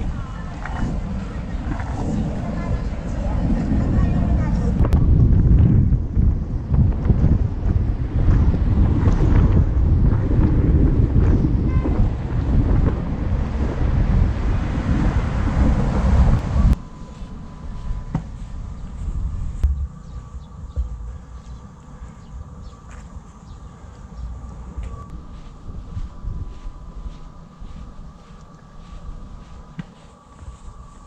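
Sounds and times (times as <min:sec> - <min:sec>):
wind buffeting microphone: 0:00.0 - 0:31.0.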